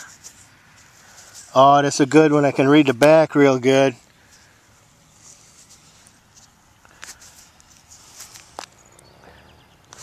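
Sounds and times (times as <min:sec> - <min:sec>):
fingers rustling in soil: 0:00.0 - 0:09.0.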